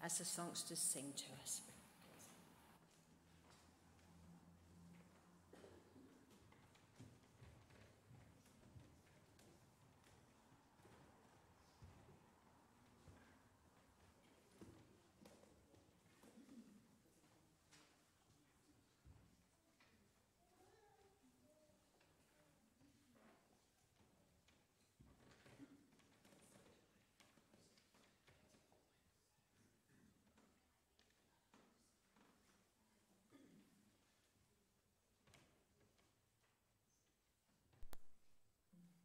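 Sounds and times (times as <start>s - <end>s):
soft footsteps and shuffles: 0.3s - 20.4s.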